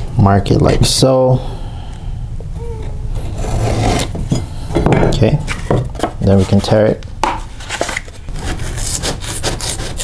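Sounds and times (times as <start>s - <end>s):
steady low hum: 0.0s - 8.6s
knife scraping drywall paper: 3.3s - 4.2s, 7.6s - 10.0s.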